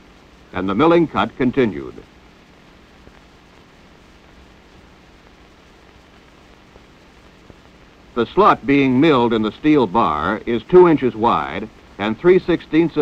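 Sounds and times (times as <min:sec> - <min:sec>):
film soundtrack hiss: 0:00.0 - 0:13.0.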